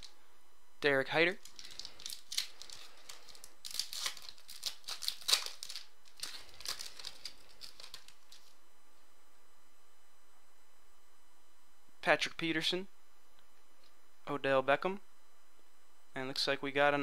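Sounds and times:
foil wrapper tearing and crinkling: 1.4 - 8.6.

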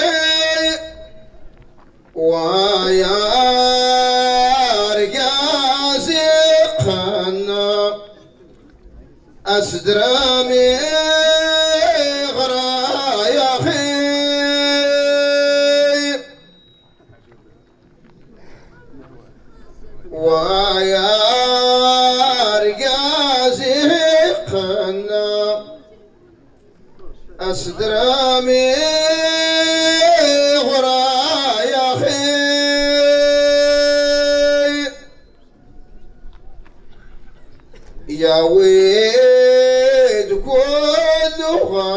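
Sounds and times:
man singing long note: 0.0 - 1.5, 2.2 - 8.2, 9.5 - 16.6, 20.1 - 26.0, 27.4 - 35.4, 38.1 - 41.9.

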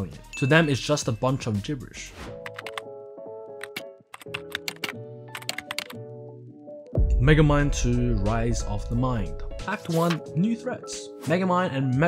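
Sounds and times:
background music with held notes: 0.0 - 12.0
keyboard typing: 2.4 - 2.9, 3.6 - 6.0.

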